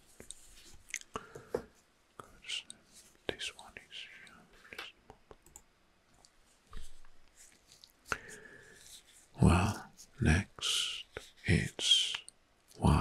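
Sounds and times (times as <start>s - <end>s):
soft close whispering: 2.1s - 5.4s, 6.7s - 13.0s.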